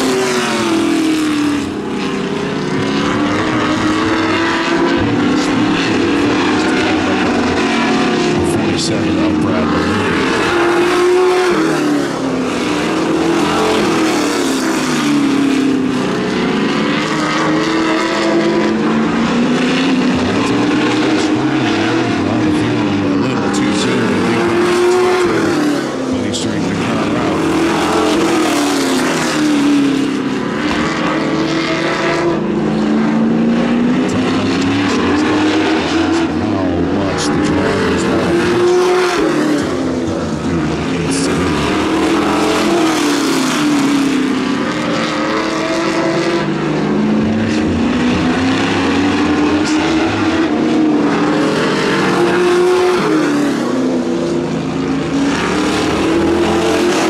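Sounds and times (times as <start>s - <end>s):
stock car engines racing: 0.0s - 57.0s.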